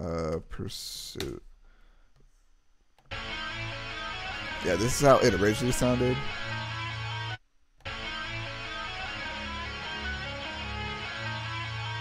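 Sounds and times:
plucked guitar-like melody loop: 3.1 - 12.0.

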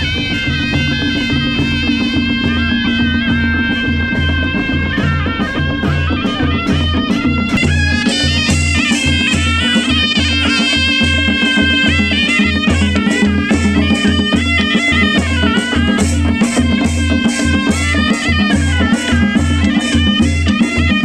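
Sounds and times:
reedy wind instrument melody: 0.0 - 21.0
steady drum beat: 0.0 - 21.0.

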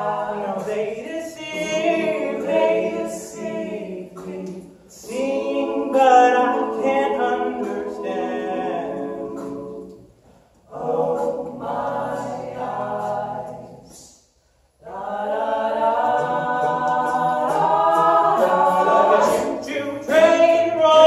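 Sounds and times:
male group singing close harmony: 0.0 - 10.0, 10.7 - 14.0, 14.8 - 21.0.

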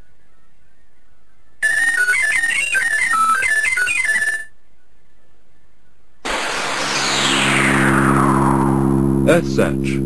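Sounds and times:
short electronic jingle: 6.3 - 9.3
electronic science fiction music: 6.3 - 9.6.

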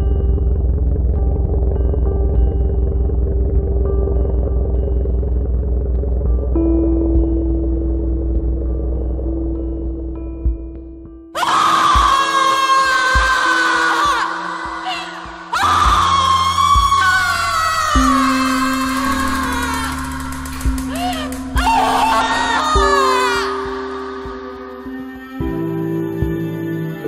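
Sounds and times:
woman screaming: 11.4 - 24.8
music score: 14.4 - 27.0.

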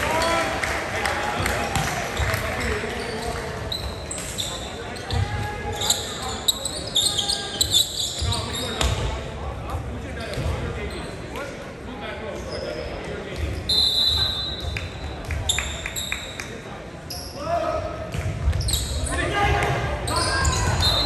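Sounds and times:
players' voices: 0.0 - 21.0
shoes squeaking on court: 2.6 - 9.2, 18.4 - 19.2.

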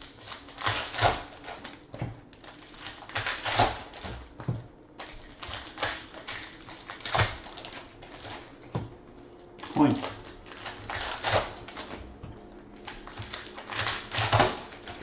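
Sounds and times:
foil wrappers crinkling and tearing: 0.0 - 4.3, 5.0 - 8.5, 9.6 - 15.0.

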